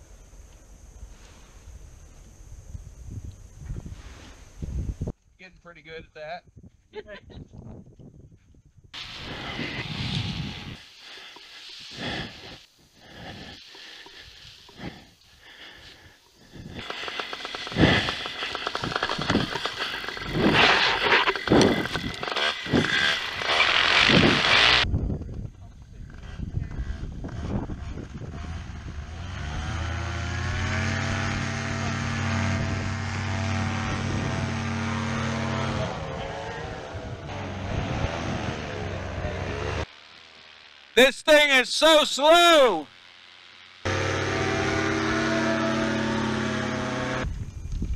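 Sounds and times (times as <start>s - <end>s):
wind on microphone: 2.6s - 5.2s, 6.5s - 10.8s, 24.0s - 29.2s, 32.4s - 38.9s, 47.2s - 47.9s
propeller engine revving: 9.0s - 24.9s, 26.1s - 41.0s, 42.9s - 47.3s.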